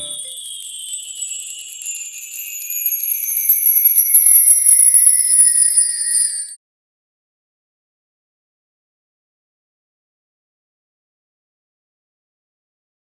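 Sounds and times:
sparkling bell-like tinkles: 0.0s - 6.6s.

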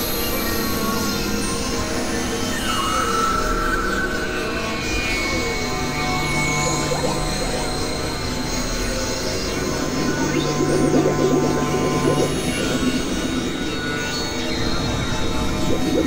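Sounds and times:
low held synth tone: 5.8s - 16.0s
synthesizer drone tones: 5.8s - 16.0s
fluttering synth texture: 6.0s - 16.0s.

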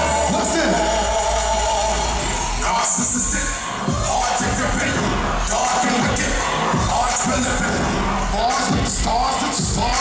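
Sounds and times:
live hip-hop music: 0.0s - 10.0s
thumping bass beat: 0.0s - 10.0s.

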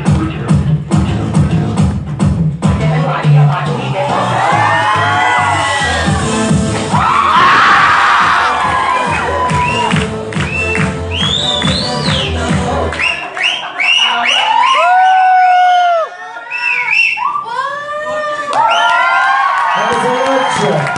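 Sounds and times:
dance music with heavy beat: 0.0s - 14.2s
crowd shouting and cheering: 3.0s - 20.9s.

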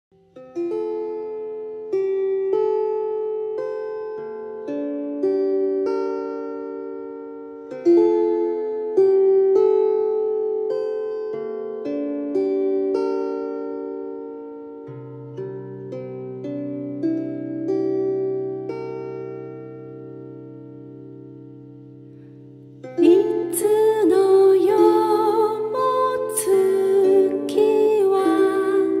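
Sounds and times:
lyre plucked notes and chords: 0.2s - 29.0s.

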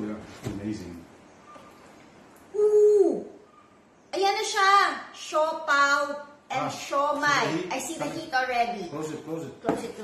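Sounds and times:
person exclaiming ooh: 2.5s - 3.4s.

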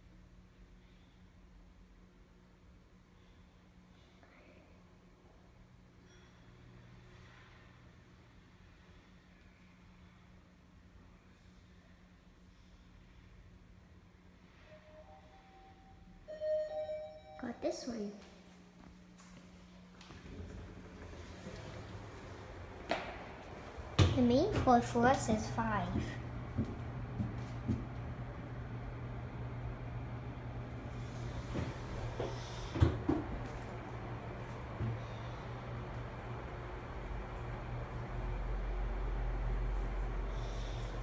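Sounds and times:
faint steady hum: 0.0s - 41.0s
elevator arrival chime: 14.6s - 18.0s.

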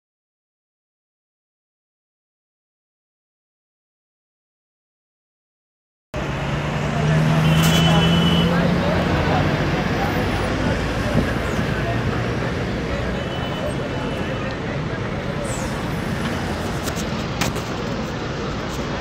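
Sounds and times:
highway traffic noise: 6.2s - 19.0s.

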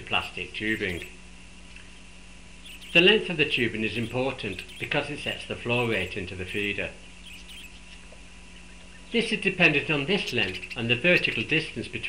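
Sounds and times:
faint high squeaks: 0.2s - 1.2s, 2.6s - 5.0s, 5.7s - 7.9s, 10.2s - 11.7s.

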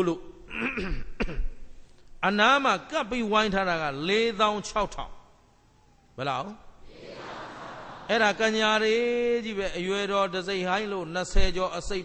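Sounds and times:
man clearing his throat: 0.5s - 1.7s.

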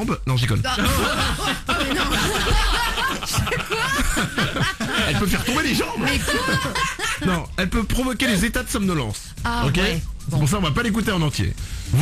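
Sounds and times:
people laughing: 0.8s - 7.5s.

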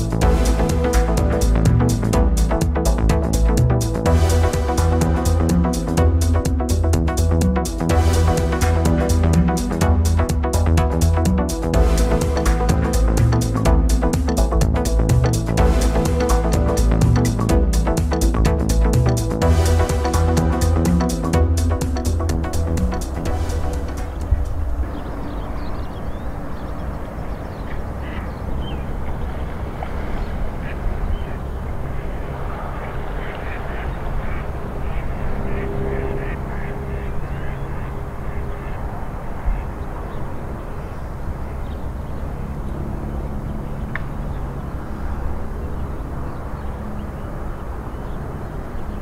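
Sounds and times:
steady low rumble: 0.0s - 49.0s
waterbirds calling: 0.0s - 49.0s
ducks quacking: 27.6s - 40.8s.

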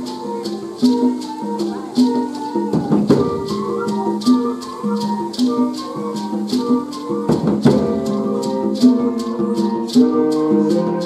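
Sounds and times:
rattling percussion strokes: 0.0s - 11.0s.

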